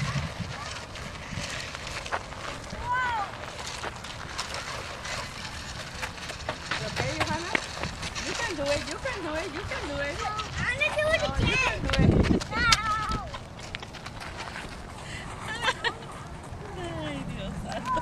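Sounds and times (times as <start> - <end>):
young children's voices: 0.0 - 1.6, 2.6 - 3.6, 9.7 - 13.5
rushing outdoor noise: 0.0 - 18.0.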